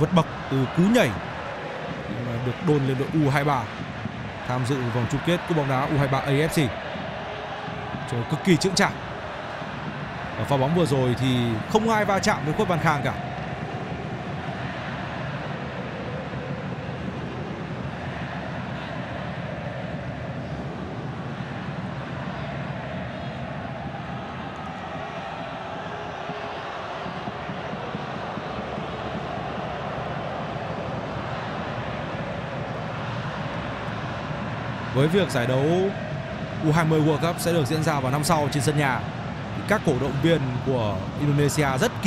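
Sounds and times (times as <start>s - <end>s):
stadium crowd din: 0.0s - 42.0s.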